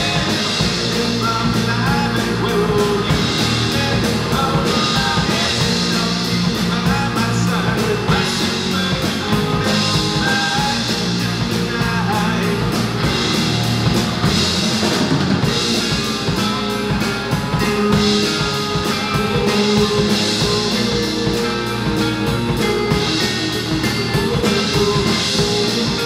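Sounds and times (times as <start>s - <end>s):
man singing: 0.0s - 13.4s, 15.5s - 26.0s
drum kit: 0.0s - 26.0s
electric bass: 0.0s - 26.0s
electric guitars: 0.0s - 26.0s.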